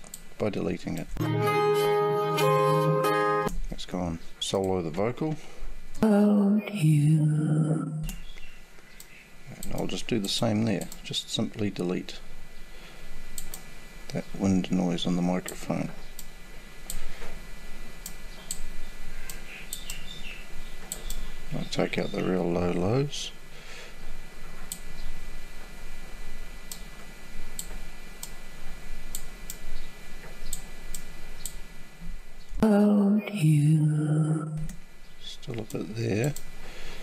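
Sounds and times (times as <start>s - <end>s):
room noise hiss and hum: 0.0s - 37.0s
computer mouse clicking: 13.4s - 13.7s.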